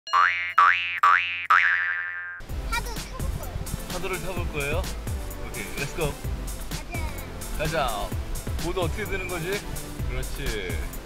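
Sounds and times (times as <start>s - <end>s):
cartoon boing sound effect: 0.1s - 2.4s
background music: 2.4s - 11.0s.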